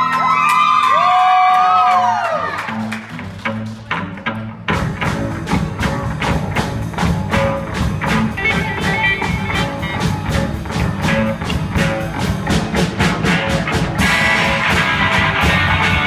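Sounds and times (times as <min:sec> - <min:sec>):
bass guitar: 0:00.0 - 0:16.0
rock band playing: 0:00.0 - 0:16.0
electric guitar bending notes: 0:02.8 - 0:16.0.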